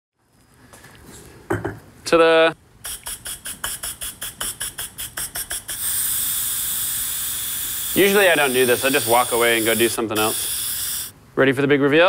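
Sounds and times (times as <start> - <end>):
pressure cooker steam hissing: 2.9 - 11.1.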